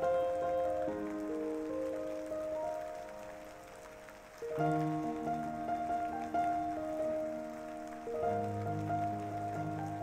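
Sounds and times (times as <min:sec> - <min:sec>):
rain patter: 0:00.0 - 0:10.0
soft background music: 0:00.0 - 0:10.0.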